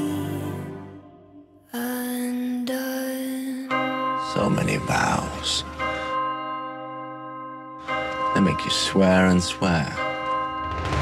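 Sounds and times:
church bell ringing: 3.7 - 11.0.

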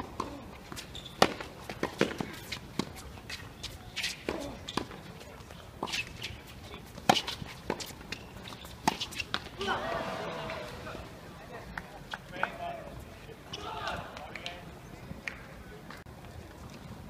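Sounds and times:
rackets hitting tennis balls: 0.0 - 9.7.

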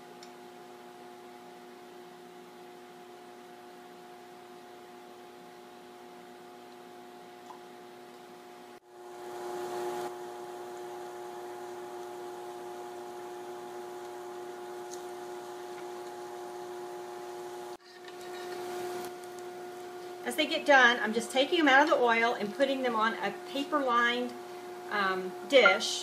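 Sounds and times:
cooktop hum: 0.0 - 26.0.

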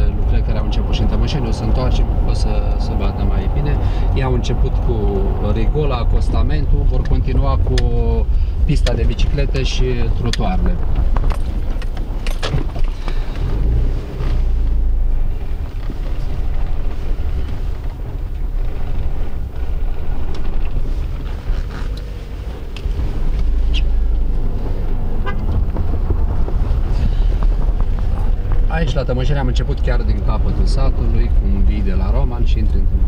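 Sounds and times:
car engine and tyres rumble: 0.0 - 33.0.

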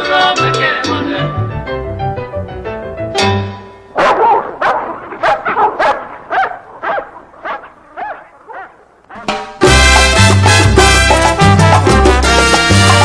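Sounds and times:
dog barking: 4.0 - 9.4
salsa music chord: 9.3 - 13.0.

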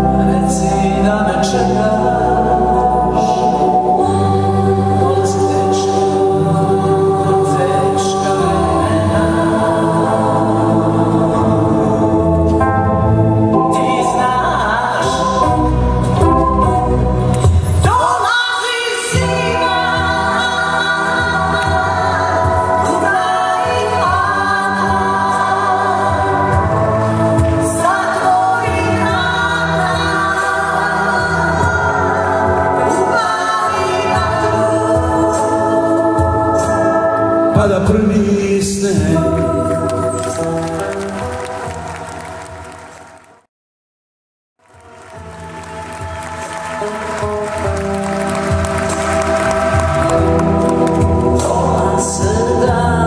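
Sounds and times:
woman singing lead: 0.0 - 12.6, 13.3 - 38.0, 48.4 - 53.0
vocal group singing in harmony: 0.0 - 42.4, 45.2 - 53.0
band accompaniment: 0.0 - 43.3, 44.6 - 53.0
applause: 40.1 - 43.5, 44.6 - 51.8.

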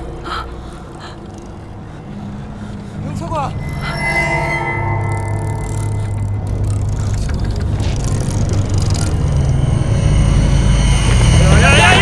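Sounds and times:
low rumbling drone: 0.0 - 12.0
high sustained tone: 3.5 - 6.8.

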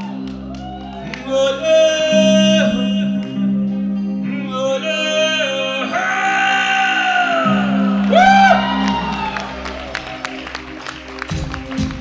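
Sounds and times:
audience whooping: 0.0 - 1.6, 6.0 - 12.0
clapping and cheering: 0.0 - 1.8, 8.0 - 12.0
band playing: 0.0 - 12.0.

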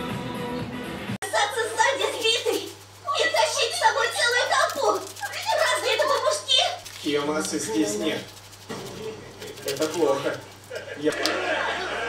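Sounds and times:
voices talking: 1.2 - 12.0.

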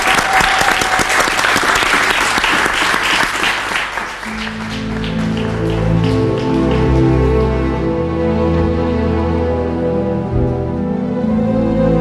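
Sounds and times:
audience applauding: 0.0 - 8.0.

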